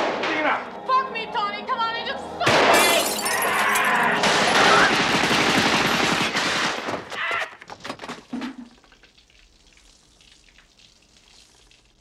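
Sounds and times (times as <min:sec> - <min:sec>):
machine gun firing: 0:04.2 - 0:07.1.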